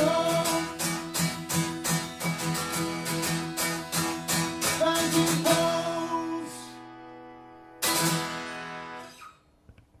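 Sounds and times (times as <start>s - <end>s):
acoustic guitar chord ringing: 0.0s - 9.3s.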